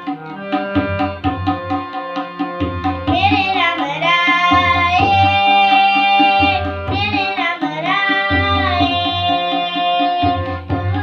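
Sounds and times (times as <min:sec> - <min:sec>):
harmonium: 0:00.0 - 0:11.0
tabla drum strikes: 0:00.0 - 0:11.0
child singing a hymn: 0:03.0 - 0:11.0.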